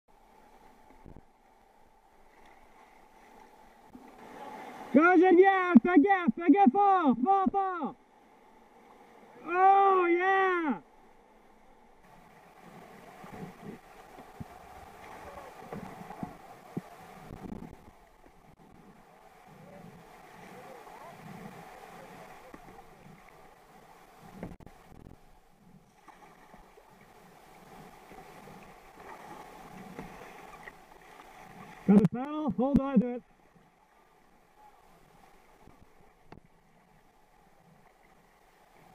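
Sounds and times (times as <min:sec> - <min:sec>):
river whitewater rushing: 0:03.0 - 0:07.9, 0:11.8 - 0:24.9
water sloshing and splashing: 0:12.0 - 0:32.0.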